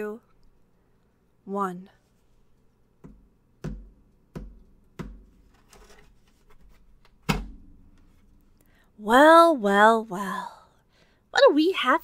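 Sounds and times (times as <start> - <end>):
dull thuds: 3.0 - 5.5.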